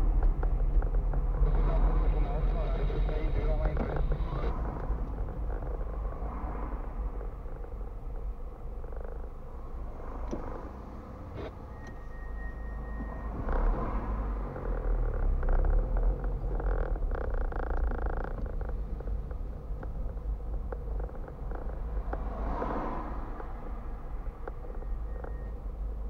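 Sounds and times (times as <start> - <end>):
car engine and road rumble: 0.0 - 26.0.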